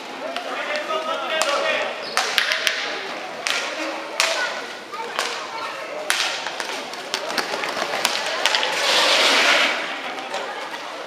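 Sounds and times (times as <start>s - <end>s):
voices of players and spectators: 0.0s - 11.0s
roller-skate wheels on floor: 0.1s - 11.0s.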